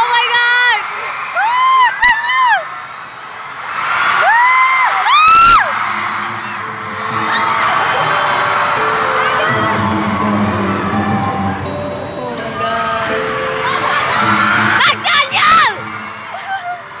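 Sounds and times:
crowd noise: 0.0 - 17.0
live music with singing: 6.3 - 16.6.

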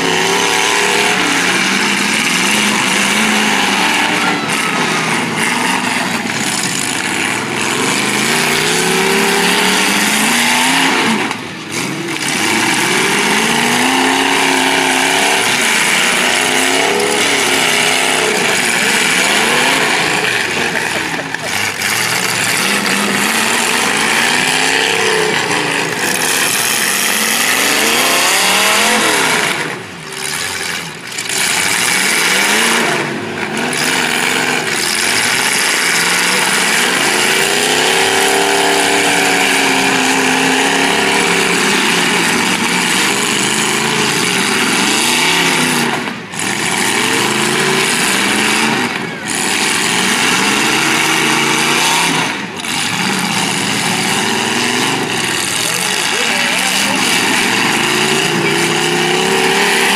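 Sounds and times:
car engines revving: 0.0 - 59.9.

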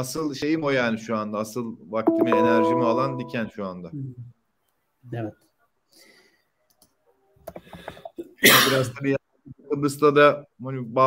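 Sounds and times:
man speaking: 2.1 - 3.6.

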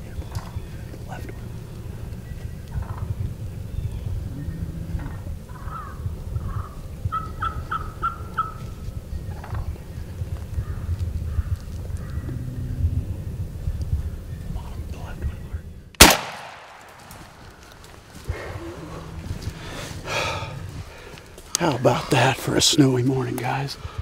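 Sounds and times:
low rumble: 0.0 - 22.1
turkey yelping: 6.6 - 8.6.

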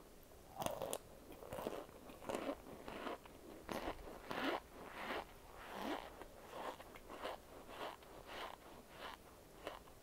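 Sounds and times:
crunchy chewing: 0.5 - 10.0.

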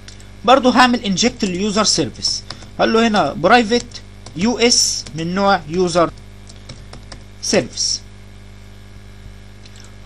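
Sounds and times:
electrical mains hum: 0.0 - 10.0
person speaking: 0.4 - 8.1.

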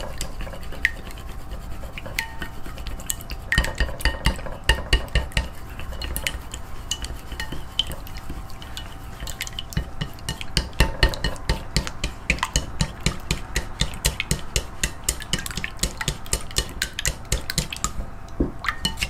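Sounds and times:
utensil clinking while stirring: 0.0 - 18.0, 18.7 - 19.0.

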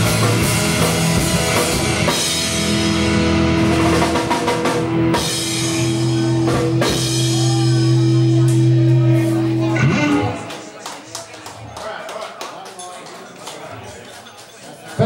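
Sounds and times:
rock band playing: 0.0 - 11.2
drums hitting: 3.7 - 10.8.

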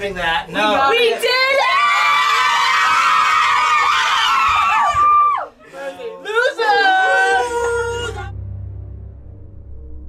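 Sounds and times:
teenagers screaming together: 1.5 - 5.6, 6.5 - 8.3.

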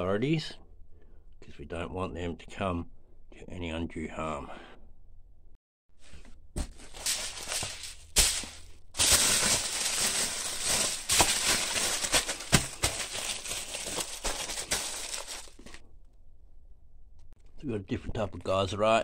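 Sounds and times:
aluminium foil crinkling: 6.7 - 15.8.

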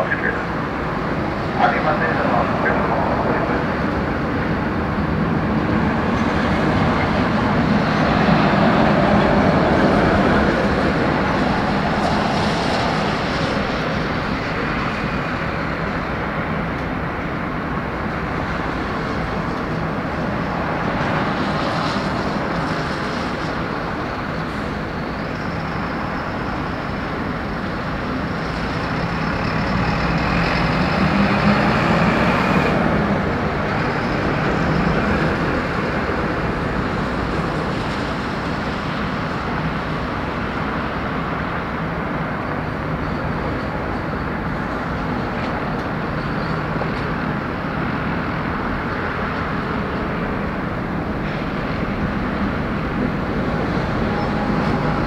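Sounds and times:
jet engines roaring at takeoff: 0.0 - 55.0.

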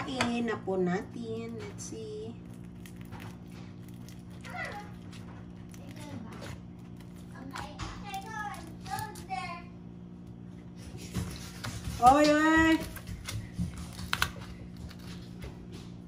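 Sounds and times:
steady low hum: 0.0 - 16.0
spatula knocking in foil pan: 11.1 - 14.2.

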